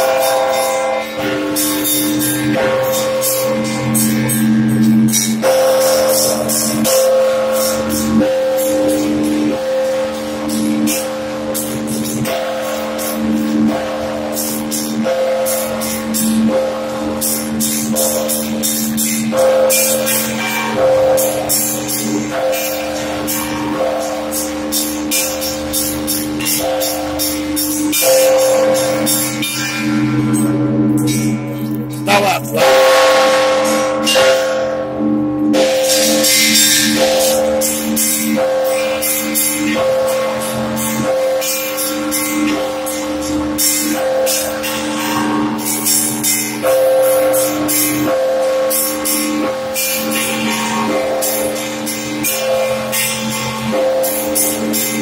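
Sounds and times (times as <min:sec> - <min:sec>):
large bells humming: 0:00.0 - 0:55.0
small church bells striking: 0:00.0 - 0:55.0.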